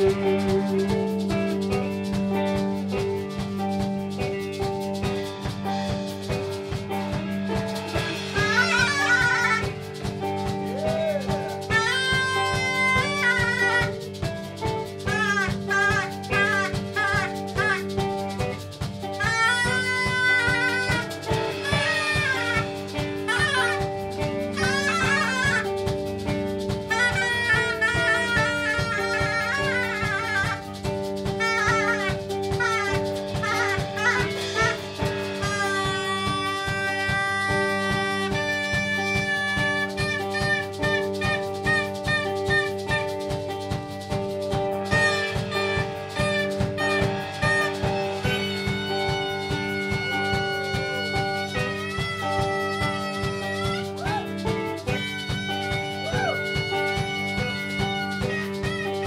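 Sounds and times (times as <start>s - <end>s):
drum kit beat: 0.0s - 59.0s
live rock band playing: 0.0s - 59.0s
wavering wind instrument melody: 0.0s - 59.0s.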